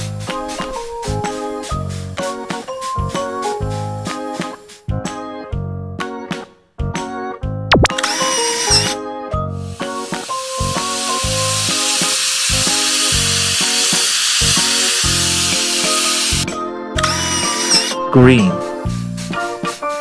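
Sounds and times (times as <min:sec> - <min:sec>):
paint spray hiss: 0:08.0 - 0:09.0, 0:09.7 - 0:18.0
cheerful keyboard music: 0:18.0 - 0:20.0.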